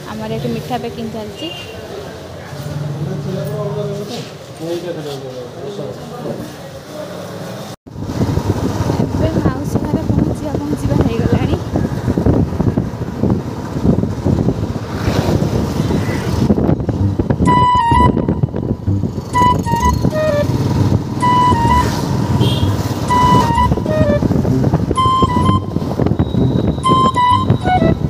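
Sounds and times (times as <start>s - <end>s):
road noise: 0.0s - 28.0s
wind rumble: 7.9s - 28.0s
electronic tune of high beeps: 17.0s - 20.5s, 21.2s - 22.0s, 23.1s - 24.2s, 25.0s - 28.0s.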